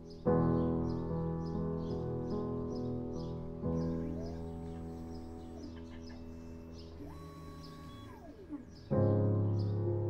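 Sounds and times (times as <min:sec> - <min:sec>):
soft background music: 0:00.0 - 0:10.0
stepper motor whine: 0:03.9 - 0:08.9.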